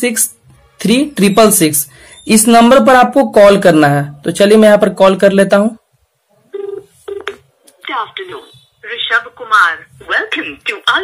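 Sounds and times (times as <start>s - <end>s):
phone beep: 6.5s - 7.4s
steady phone tone: 6.5s - 7.4s.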